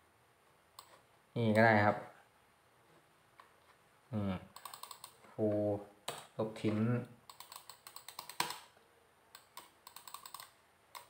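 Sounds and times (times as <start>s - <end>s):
typing on a computer keyboard: 4.6s - 5.2s, 7.3s - 8.7s, 9.4s - 11.0s.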